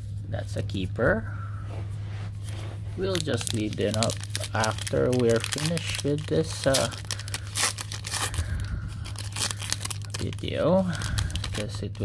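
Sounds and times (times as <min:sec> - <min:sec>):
steady low hum: 0:00.0 - 0:12.0
foil wrapper crinkling and tearing: 0:03.0 - 0:12.0.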